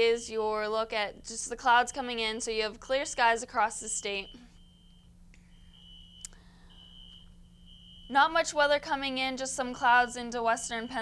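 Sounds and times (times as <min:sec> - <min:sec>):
low steady hum: 0:00.0 - 0:11.0
high-pitched electronic beeps: 0:04.2 - 0:08.2.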